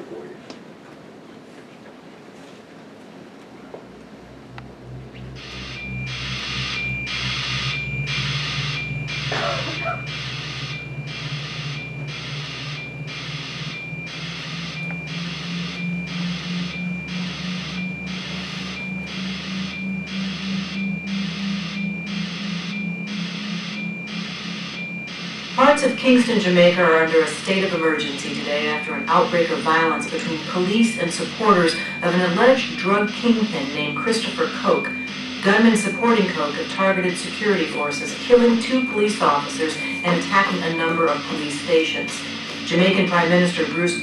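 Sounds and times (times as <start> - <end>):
low drone rising in pitch: 3.8 - 44.0
electronic pulse: 4.1 - 44.0.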